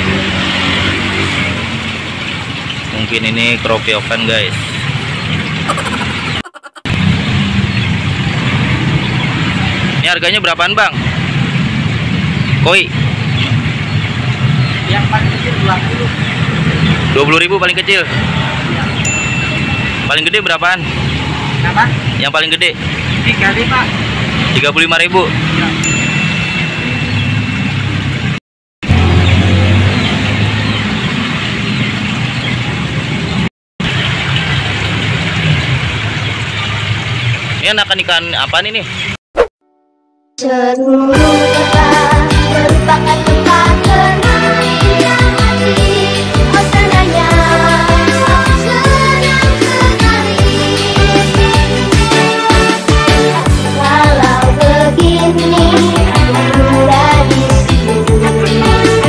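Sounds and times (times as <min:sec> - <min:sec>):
loud background noise: 0:00.0 - 0:39.2.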